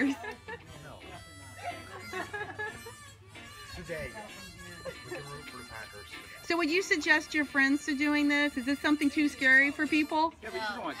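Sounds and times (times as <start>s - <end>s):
background music: 0.0s - 11.0s
chatter of people: 0.0s - 11.0s.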